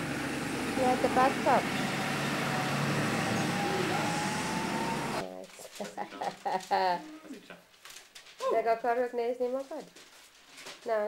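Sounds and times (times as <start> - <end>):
person speaking: 5.2 - 7.6.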